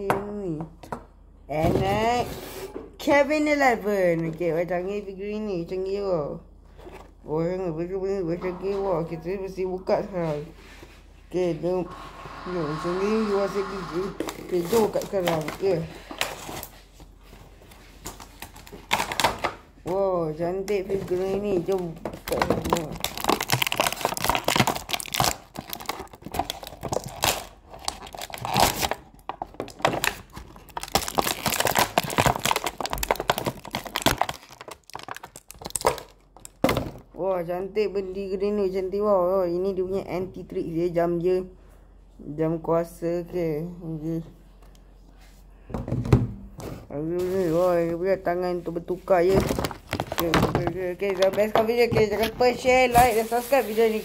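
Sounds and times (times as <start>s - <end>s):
plastic packaging rustling: 14.1s - 19.8s, 20.7s - 36.6s, 49.1s - 54.0s.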